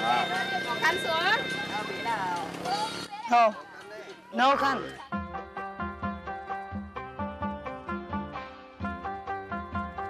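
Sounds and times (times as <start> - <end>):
voices calling out: 0.0 - 5.1
background music: 4.4 - 10.0.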